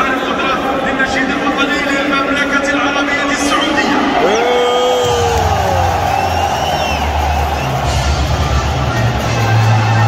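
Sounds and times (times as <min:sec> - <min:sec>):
anthem over public address: 0:00.0 - 0:10.0
crowd whistles and shouts: 0:03.6 - 0:10.0.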